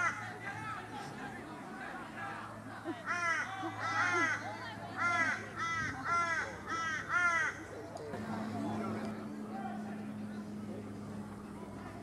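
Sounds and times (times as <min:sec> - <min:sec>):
crow cawing: 0:03.1 - 0:04.4, 0:05.0 - 0:07.6.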